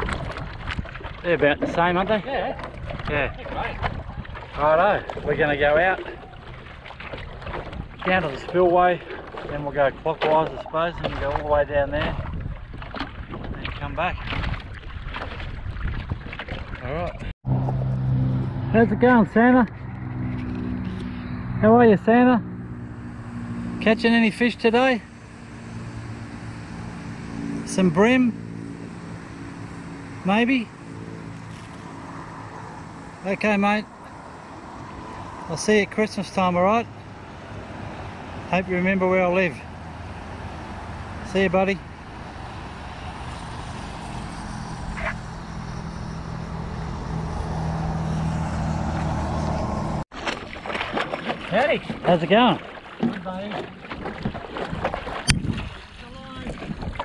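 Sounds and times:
low motor hum: 0.0 - 57.0.

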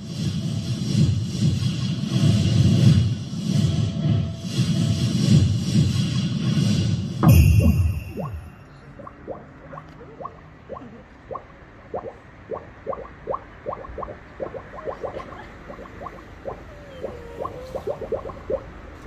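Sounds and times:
water bubbling: 9.0 - 18.8.

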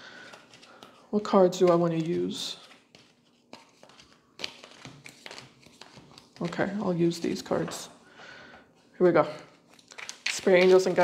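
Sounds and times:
cards tapping and rustling: 0.2 - 7.8, 9.4 - 11.0.

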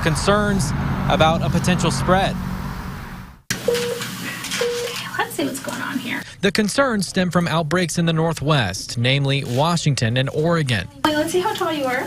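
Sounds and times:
low traffic noise: 0.0 - 3.5
short electronic beeps: 3.6 - 4.0, 4.6 - 5.0.

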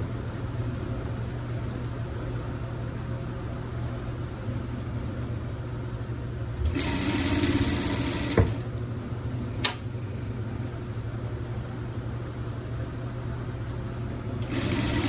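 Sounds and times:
sewing machine stitching: 6.6 - 8.6, 14.4 - 15.0
sewing machine hum: 6.6 - 8.8, 14.4 - 15.0.

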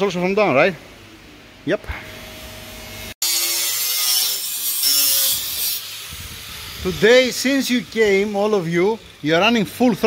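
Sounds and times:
angle grinder grinding metal: 3.2 - 10.0.

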